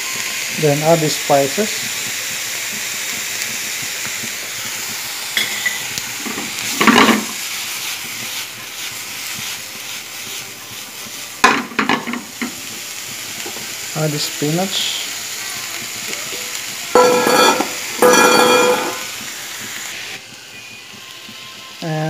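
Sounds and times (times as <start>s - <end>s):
vegetables sizzling in frying pan: 0.0s - 22.0s
stirring clattering against pan: 5.4s - 7.4s, 17.0s - 19.1s.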